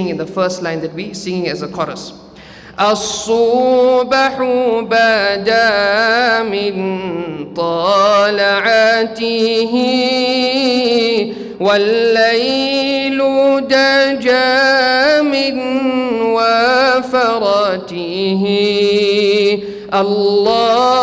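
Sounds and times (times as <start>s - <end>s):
man chanting unaccompanied: 0.0s - 21.0s.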